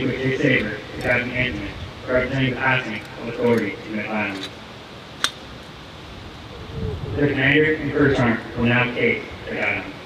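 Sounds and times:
steady background hiss: 0.0 - 10.0.

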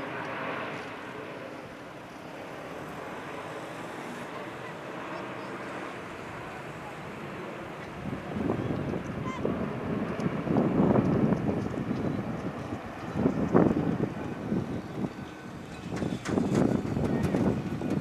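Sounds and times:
jet airliner flying overhead: 0.0 - 18.0
harsh engine crackles: 11.0 - 18.0.

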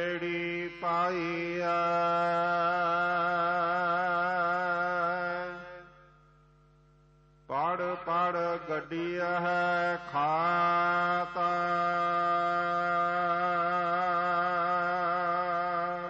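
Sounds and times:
voice chanting verses: 0.0 - 6.0, 7.5 - 16.0.

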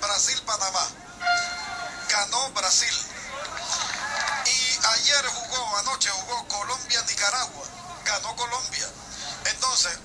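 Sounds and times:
man talking through tv speaker: 0.0 - 10.0
music from tv: 1.0 - 6.2.

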